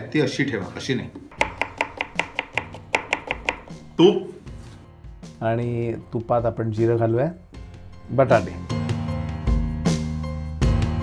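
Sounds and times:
knife chopping potato on board: 1.3 - 4.0.

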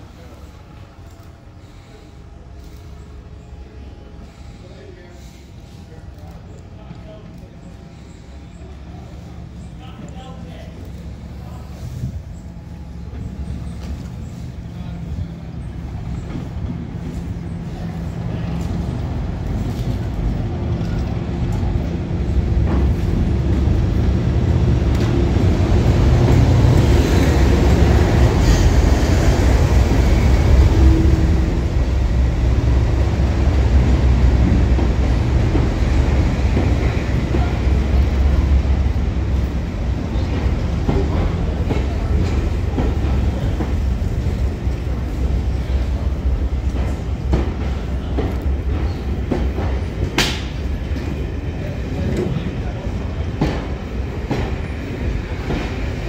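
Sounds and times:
diesel locomotive engine running: 0.0 - 56.0
rumble of train coaches: 0.0 - 56.0.

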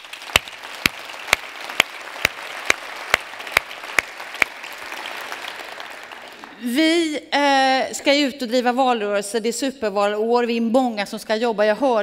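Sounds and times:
audience applause: 0.0 - 6.6
close hand claps: 0.0 - 6.6.

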